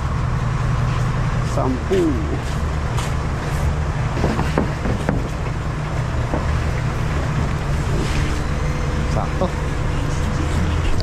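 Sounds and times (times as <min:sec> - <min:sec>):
vehicle engine idling: 0:00.0 - 0:11.0
plywood knocking and scraping: 0:03.0 - 0:08.3.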